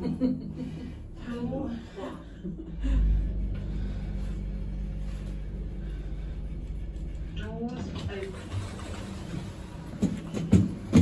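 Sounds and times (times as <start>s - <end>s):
low hum: 0.0s - 10.3s.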